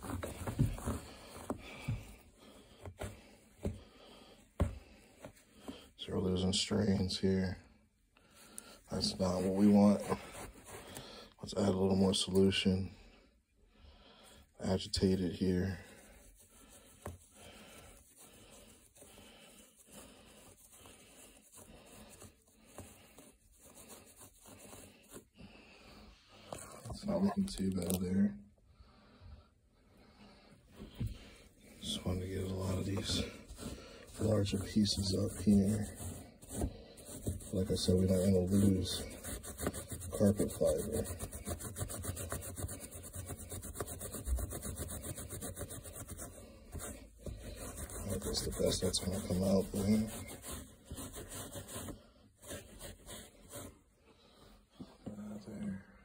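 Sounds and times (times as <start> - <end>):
gloved hand scrubbing wet carpet: 0.0 - 3.8, 31.0 - 53.9.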